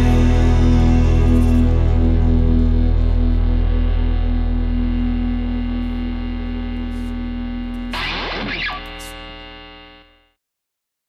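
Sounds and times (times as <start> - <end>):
distorted electric guitar chord ringing: 0.0 - 10.4.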